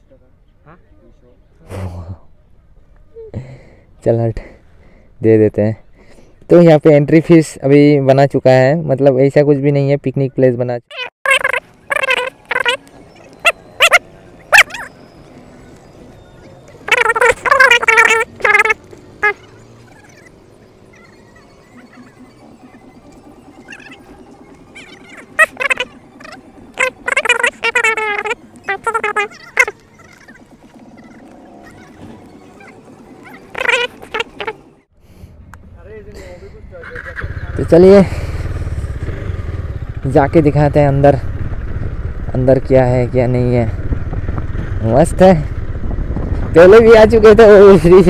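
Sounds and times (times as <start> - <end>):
animal high-pitched cries: 10.9 - 15.2, 16.8 - 22.8, 23.6 - 34.6
loud wavering bird calls: 10.9 - 34.9.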